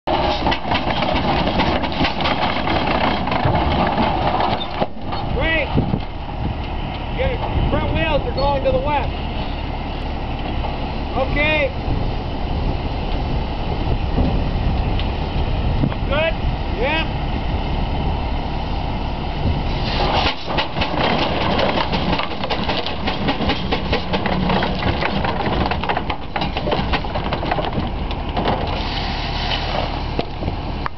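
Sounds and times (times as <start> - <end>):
mechanical knocks and clanks: 0.1 - 6.1, 20.0 - 28.8
steam traction engine running: 16.7 - 30.8.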